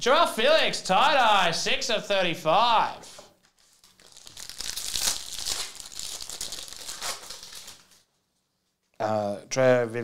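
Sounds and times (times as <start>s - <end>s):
plastic wrapper crinkling: 3.4s - 8.2s.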